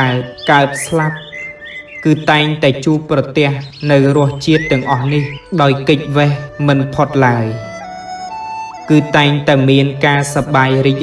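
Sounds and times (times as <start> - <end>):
high bird chirps: 0.0 - 6.6
soft background music: 0.0 - 11.0
man talking: 8.9 - 11.0.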